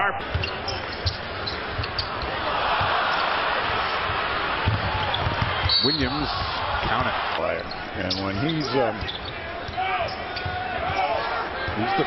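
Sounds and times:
arena crowd noise: 0.0s - 12.0s
basketball bouncing on hardwood: 4.6s - 5.8s.

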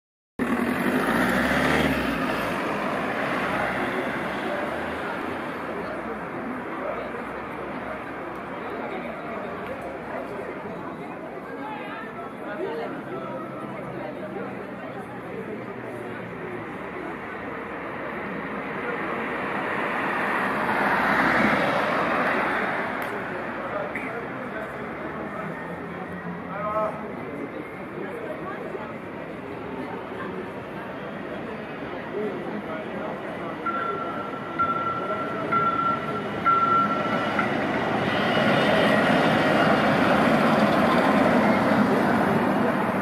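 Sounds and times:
vehicle passing by: 0.4s - 5.7s.

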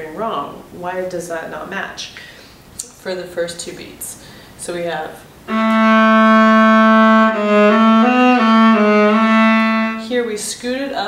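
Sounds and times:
bowed viola: 5.5s - 10.1s.

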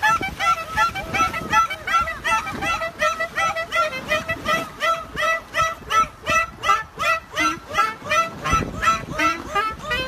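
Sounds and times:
clarinet playing short notes: 0.0s - 10.0s.

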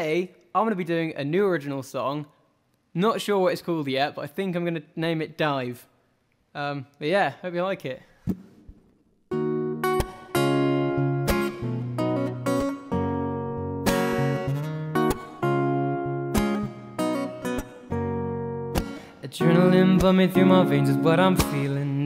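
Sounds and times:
acoustic guitar strumming: 9.3s - 22.0s.

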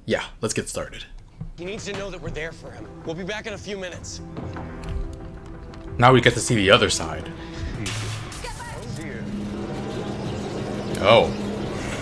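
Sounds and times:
faint dialogue: 0.0s - 12.0s
steady low drone: 1.7s - 12.0s.

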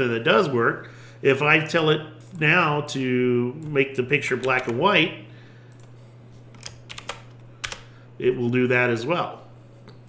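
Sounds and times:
faint steady low hum: 0.0s - 10.0s
computer keyboard keystrokes: 4.4s - 4.8s, 6.5s - 7.9s.

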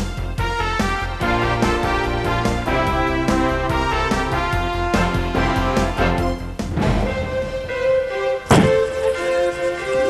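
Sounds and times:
background music: 0.0s - 10.0s
sharp thud of rock breaking: 8.5s - 9.0s.

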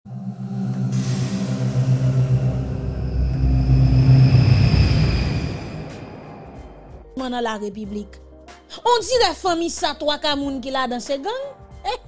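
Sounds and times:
deep rumble: 0.1s - 7.2s
hissing swell: 0.1s - 7.2s
low synth tones: 0.1s - 7.2s.

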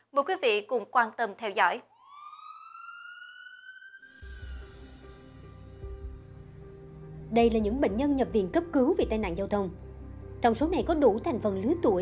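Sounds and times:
ambulance siren wailing: 1.8s - 4.8s.

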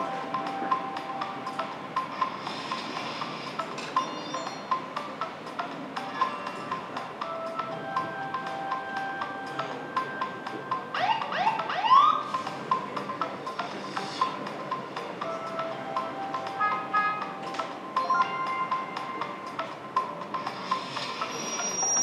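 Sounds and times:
background music with ticking beat: 0.0s - 22.0s.

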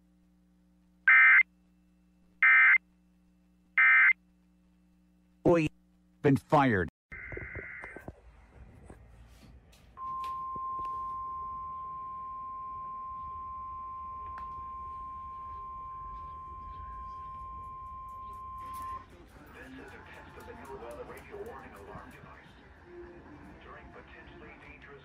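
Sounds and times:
steady alarm tone: 10.1s - 19.1s.

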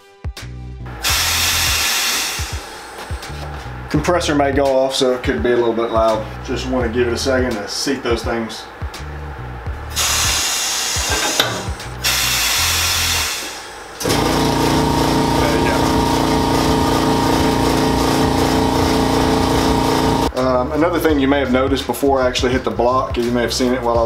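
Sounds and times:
pneumatic press air hiss: 1.0s - 3.2s, 9.9s - 18.5s
air compressor motor hum: 1.0s - 3.5s, 9.9s - 20.3s.

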